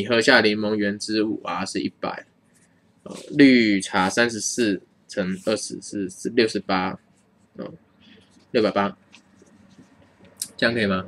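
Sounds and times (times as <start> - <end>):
person speaking syllable: 0.0 - 2.2, 3.1 - 7.0.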